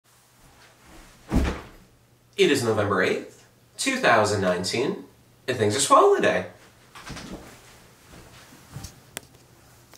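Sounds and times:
person dropping into chair thump: 0:00.9 - 0:01.9.

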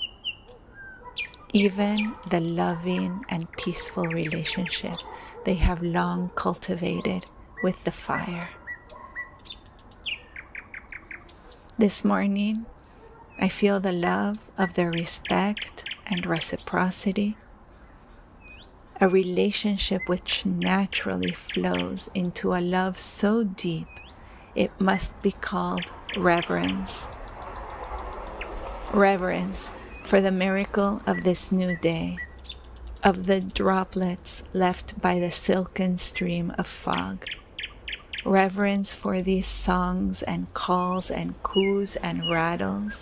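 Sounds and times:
songbirds chirping: 0:00.0 - 0:43.0
faint ticks: 0:27.0 - 0:28.5.

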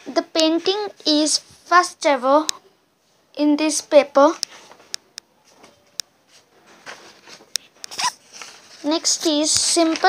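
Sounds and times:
paper rustling: 0:04.5 - 0:10.0.

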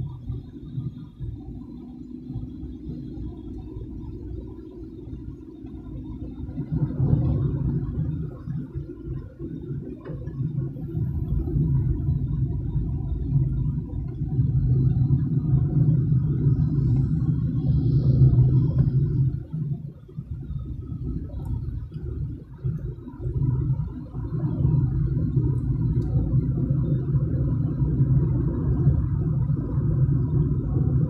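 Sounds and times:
car engine rumble: 0:00.0 - 0:31.0
road noise: 0:00.0 - 0:31.0.

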